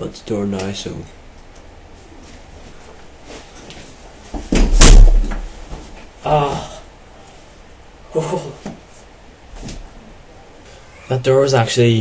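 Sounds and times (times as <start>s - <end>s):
thud against wooden door: 4.5s - 5.5s.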